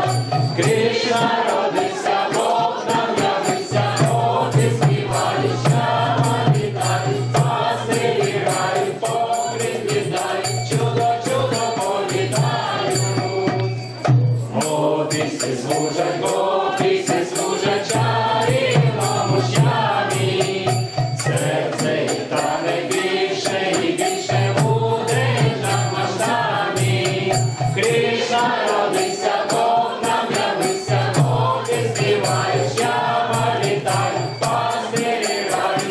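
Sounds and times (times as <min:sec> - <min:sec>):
group singing a carol: 0:00.0 - 0:35.9
tambourine jingles: 0:00.0 - 0:35.9.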